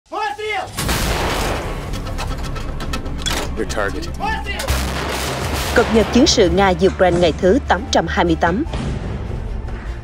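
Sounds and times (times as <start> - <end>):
man shouting: 0.1 - 0.7
artillery gun firing: 0.8 - 2.2, 4.7 - 6.6.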